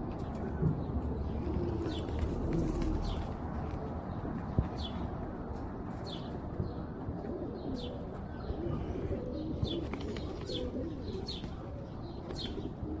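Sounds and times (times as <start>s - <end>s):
pigeon cooing: 1.0s - 3.9s, 6.2s - 13.0s.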